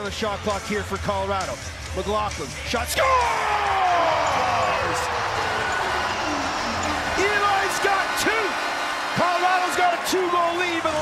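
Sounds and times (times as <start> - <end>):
crowd cheering loudly: 3.0 - 11.0.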